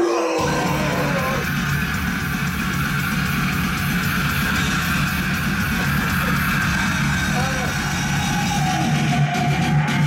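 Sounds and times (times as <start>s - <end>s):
rock music through loudspeaker: 0.0s - 10.0s.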